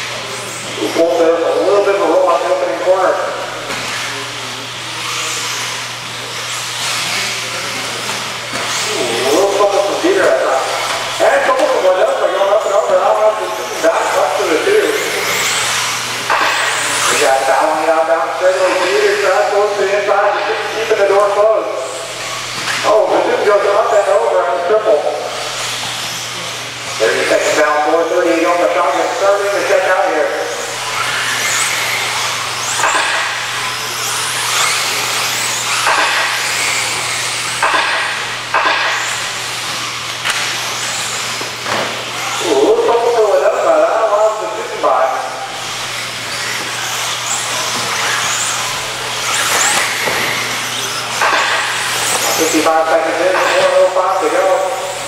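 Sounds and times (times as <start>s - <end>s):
rc car motors and tyres: 0.0s - 1.5s, 3.4s - 24.4s, 25.0s - 55.0s.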